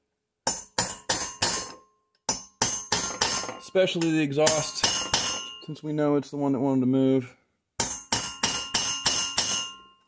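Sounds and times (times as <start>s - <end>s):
hammer tapping steel punch: 0.4s - 5.6s, 7.8s - 10.0s.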